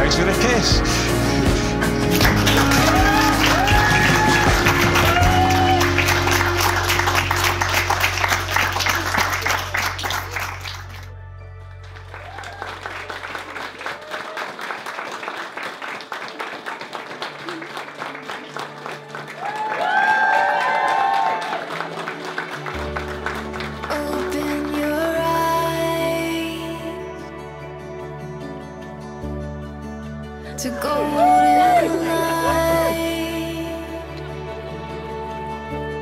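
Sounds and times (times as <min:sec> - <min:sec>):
people applauding: 0:00.0 - 0:25.4, 0:30.7 - 0:33.4
background music: 0:00.0 - 0:36.0.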